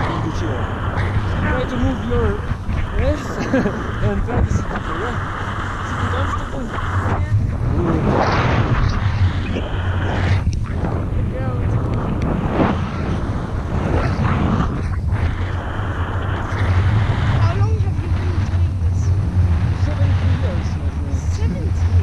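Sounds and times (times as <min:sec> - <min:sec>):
wind rush on microphone: 0:00.0 - 0:22.0.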